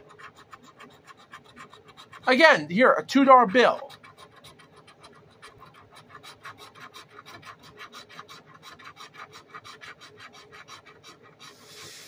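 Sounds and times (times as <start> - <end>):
fingertip scraping lottery ticket: 0.0 - 12.0.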